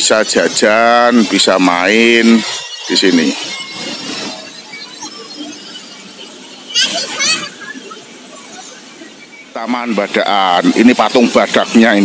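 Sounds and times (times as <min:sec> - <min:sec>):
people chattering: 0:00.0 - 0:12.0
children playing: 0:01.0 - 0:11.2
child's high-pitched squeal: 0:06.6 - 0:08.8.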